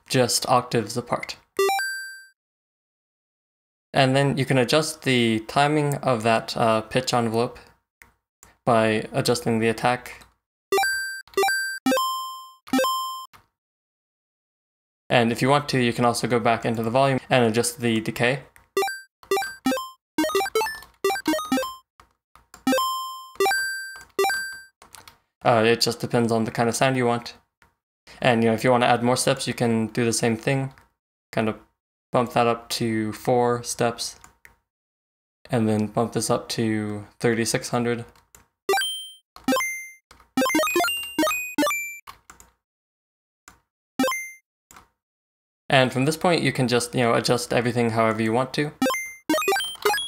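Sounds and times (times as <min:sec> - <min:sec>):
chiptune synth blips: 0:01.6 - 0:02.3, 0:10.7 - 0:13.3, 0:18.8 - 0:21.8, 0:22.7 - 0:24.7, 0:38.7 - 0:42.0, 0:44.0 - 0:44.4, 0:48.8 - 0:50.0.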